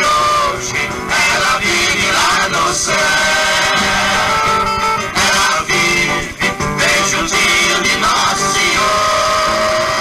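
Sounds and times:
person singing: 0.0 - 10.0
samba band playing: 0.1 - 10.0.

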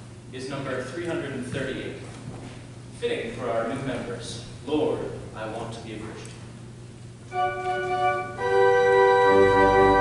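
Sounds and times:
steady low hum: 0.0 - 10.0
man speaking: 0.3 - 2.1, 3.0 - 6.4.

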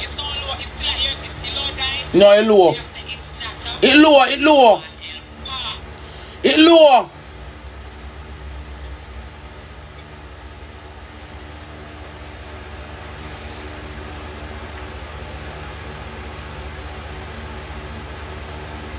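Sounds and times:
faint pulsing high tone: 0.0 - 18.9
low hum and hiss: 0.0 - 18.9.

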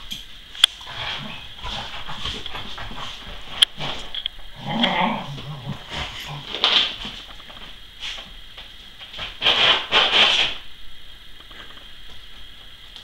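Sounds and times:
dog scuffling on rug: 0.8 - 10.5.

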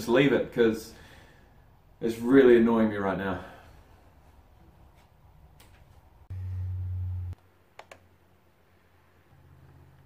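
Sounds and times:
loud low hum: 6.3 - 7.4
computer mouse clicks: 7.8 - 8.0.

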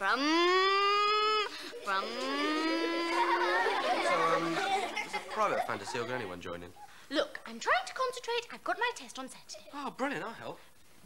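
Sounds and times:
girl imitating car engine: 0.0 - 3.4.

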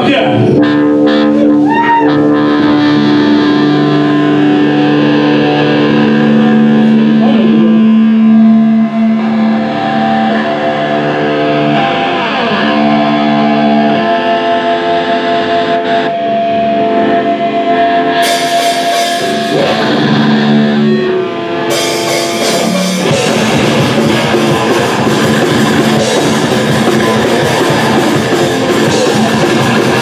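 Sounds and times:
bass guitar chords: 0.0 - 30.0
distorted electric guitars: 0.0 - 30.0.

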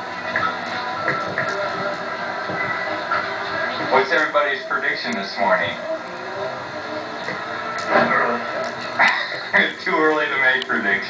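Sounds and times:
indistinct voices: 0.0 - 11.0
videotape hiss: 0.0 - 11.0.

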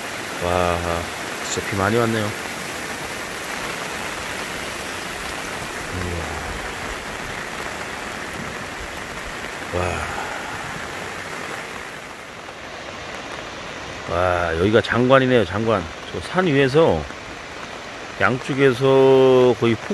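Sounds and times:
heavy rain: 0.0 - 19.9
stream running high: 0.0 - 19.9.

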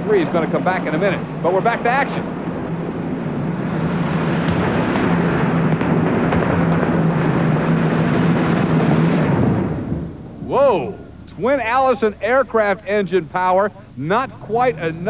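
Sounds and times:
aircraft engines droning and popping: 0.0 - 15.0.

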